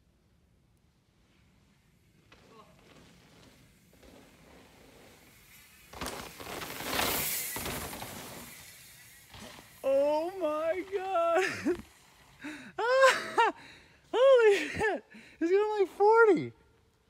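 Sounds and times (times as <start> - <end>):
bike tyres rushing on dirt: 0.0 - 12.8.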